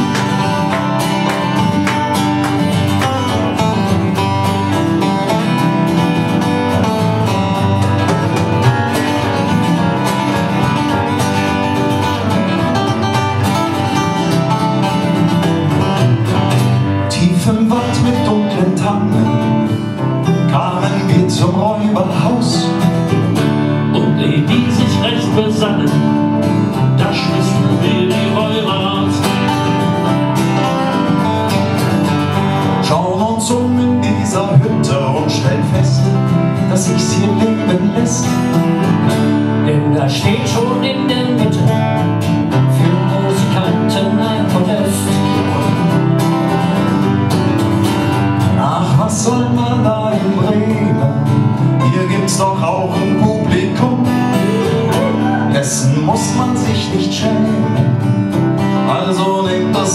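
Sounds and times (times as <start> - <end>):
acoustic folk band playing: 0.0 - 59.9
strummed acoustic guitars: 0.0 - 59.9.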